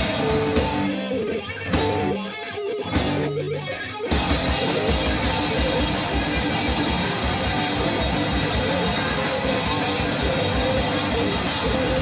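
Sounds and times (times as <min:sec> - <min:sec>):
electric guitar riff: 0:00.0 - 0:12.0
heavy metal band playing live: 0:00.0 - 0:12.0.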